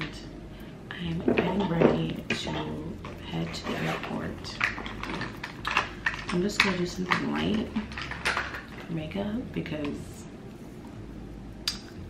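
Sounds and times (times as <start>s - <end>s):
small hard objects clicking: 4.5s - 8.9s.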